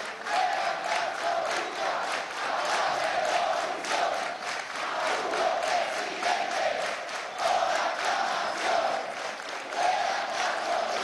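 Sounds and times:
crowd chanting in unison: 0.0 - 11.0
rhythmic clapping: 0.0 - 11.0.

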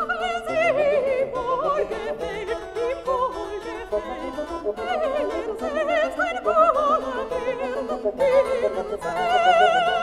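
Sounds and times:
baroque orchestra: 0.0 - 10.0
plucked harpsichord notes: 0.0 - 10.0
soprano singing with vibrato: 0.0 - 10.0.

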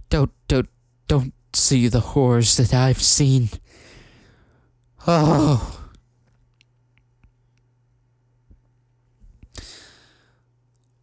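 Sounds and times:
man sighing: 5.0 - 6.0.

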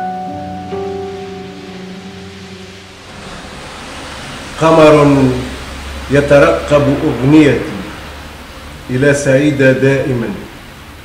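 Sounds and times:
held piano note: 0.0 - 7.3
faint hiss: 0.0 - 11.0.

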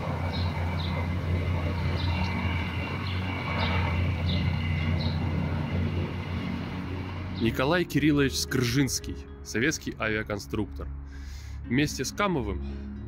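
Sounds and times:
distant traffic rumble: 0.0 - 13.0.

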